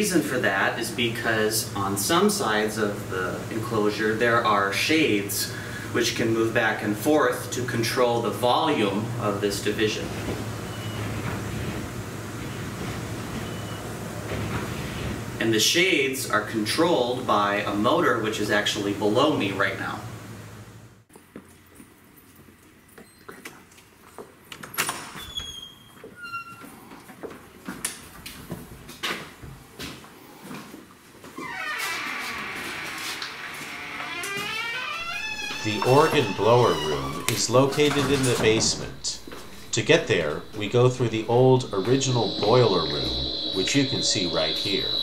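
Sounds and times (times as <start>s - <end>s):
metal door creaking open: 31.4s - 45.0s
footsteps: 35.0s - 45.0s
faint high whistles: 35.1s - 45.0s
organ machinery hum and hiss: 35.1s - 45.0s.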